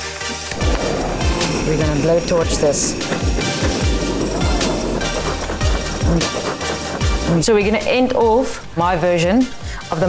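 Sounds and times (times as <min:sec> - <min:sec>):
music with bass drum beat: 0:00.6 - 0:08.4.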